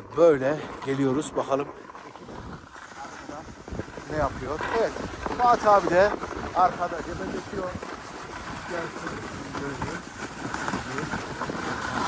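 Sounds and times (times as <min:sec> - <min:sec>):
snowboard scraping on snow: 0:00.0 - 0:12.0
wind on microphone: 0:00.0 - 0:12.0.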